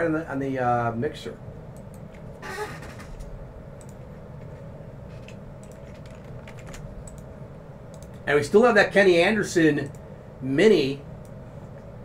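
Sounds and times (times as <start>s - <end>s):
low room hum: 0.0s - 12.0s
typing on computer keyboard: 5.6s - 7.2s.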